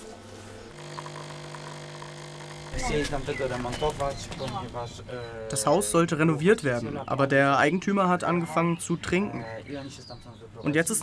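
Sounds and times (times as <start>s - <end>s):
coffee machine humming: 0.0s - 4.2s
people talking: 2.8s - 11.0s.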